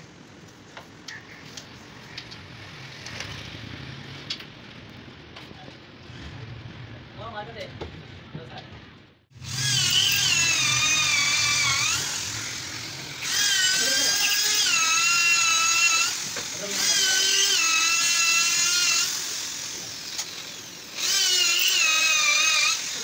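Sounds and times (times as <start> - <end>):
electric drill boring into wood: 9.4 - 23.0.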